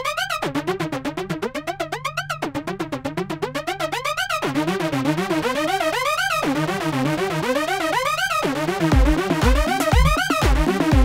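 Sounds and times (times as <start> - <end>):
arpeggiated synth notes: 0.0 - 11.0.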